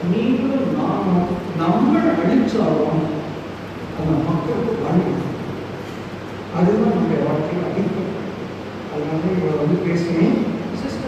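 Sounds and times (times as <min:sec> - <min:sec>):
man lecturing through loudspeakers: 0:00.0 - 0:05.8, 0:06.5 - 0:11.0
background hiss: 0:00.0 - 0:11.0.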